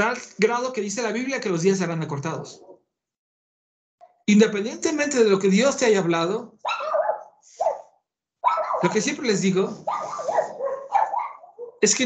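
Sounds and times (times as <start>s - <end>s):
dog barking: 6.6s - 9.1s, 9.8s - 11.8s.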